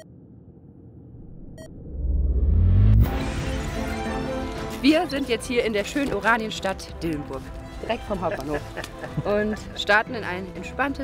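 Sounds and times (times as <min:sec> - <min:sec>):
low synthetic rumble: 0:00.0 - 0:04.7.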